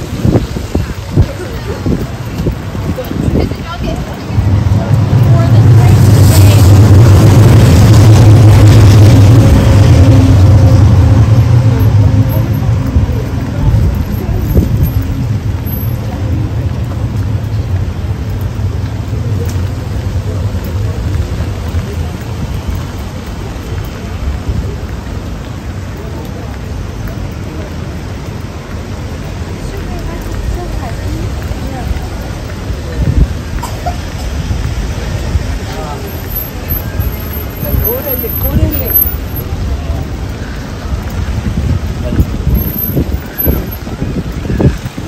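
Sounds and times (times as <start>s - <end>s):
steady rain: 0.0s - 45.0s
tram rumbling past: 0.0s - 45.0s
wet street noise: 0.0s - 45.0s.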